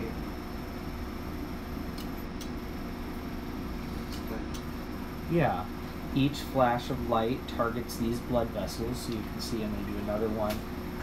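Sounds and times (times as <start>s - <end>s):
fan-like machine hum: 0.0s - 11.0s.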